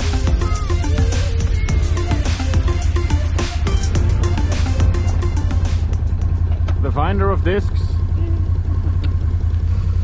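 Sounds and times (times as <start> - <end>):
quad bike engine idling: 0.0 - 10.0.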